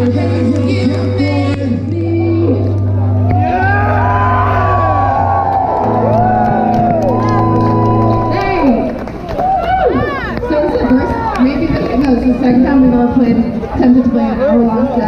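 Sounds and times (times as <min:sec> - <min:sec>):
crowd shouting and cheering: 0:00.0 - 0:15.0.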